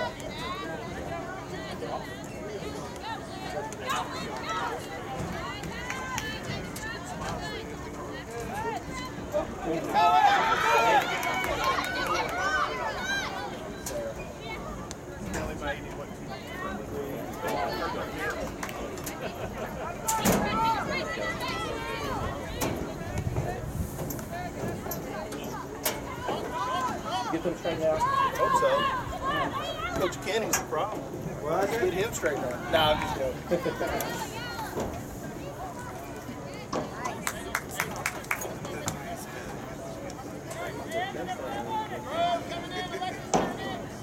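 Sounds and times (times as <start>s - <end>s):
voices shouting: 0.0s - 14.9s, 16.1s - 23.7s, 24.3s - 37.6s
outdoor noise: 0.0s - 44.0s.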